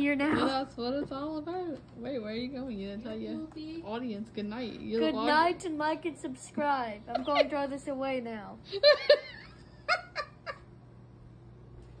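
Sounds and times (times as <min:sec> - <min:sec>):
faint steady hum: 0:00.0 - 0:12.0
person laughing: 0:07.1 - 0:07.5, 0:08.7 - 0:10.7.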